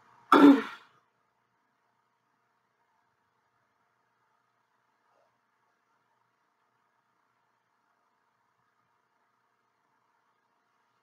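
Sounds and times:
person clearing throat: 0:00.3 - 0:00.9.

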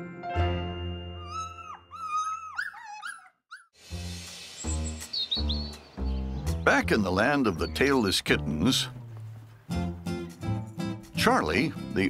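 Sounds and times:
young pet squeaky cries: 0:01.2 - 0:03.7.

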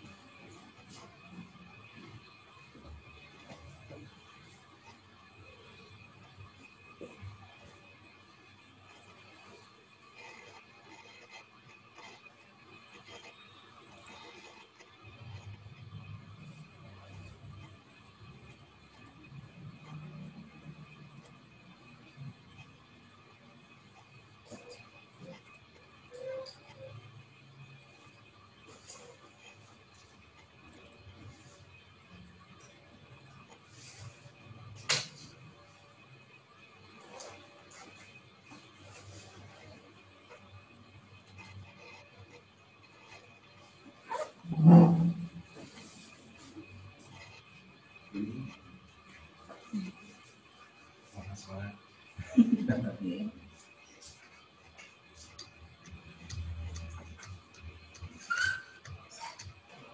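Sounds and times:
faint indistinct sounds: 0:00.0 - 0:59.9
faint call audio hiss: 0:33.2 - 0:59.9.

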